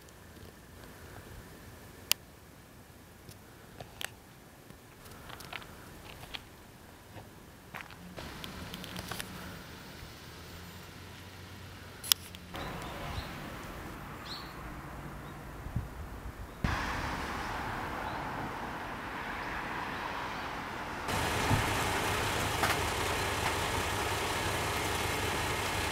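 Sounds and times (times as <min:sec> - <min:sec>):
outdoor vehicle noise: 0:00.0 - 0:25.9
railcar diesel engine idling: 0:12.6 - 0:14.0, 0:21.1 - 0:25.9.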